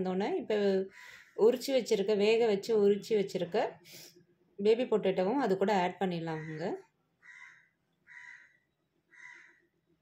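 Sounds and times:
woman speaking: 0:00.0 - 0:03.9, 0:04.6 - 0:06.9
crow cawing: 0:00.9 - 0:01.3, 0:07.2 - 0:09.7.

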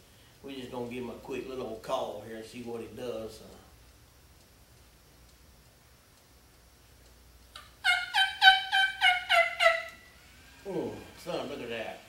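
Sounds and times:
turkey gobbling: 0:07.6 - 0:10.1.

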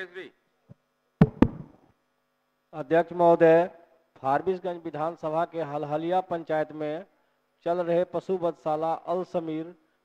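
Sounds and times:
sharp knocks: 0:01.2 - 0:01.8.

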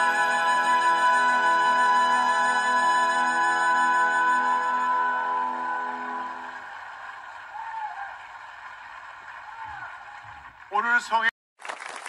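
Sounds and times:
large outdoor crowd hiss: 0:05.4 - 0:12.0.

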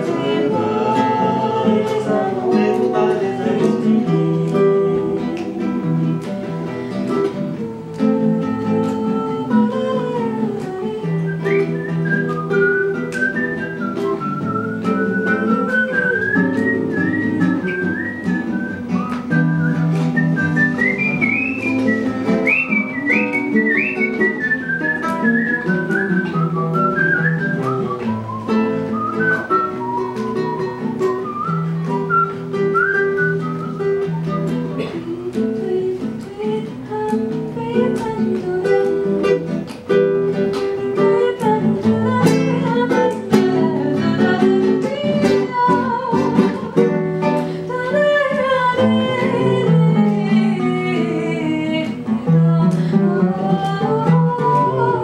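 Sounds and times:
nylon-string guitars plucking: 0:00.0 - 0:55.0
whistled melody: 0:11.1 - 0:34.7.

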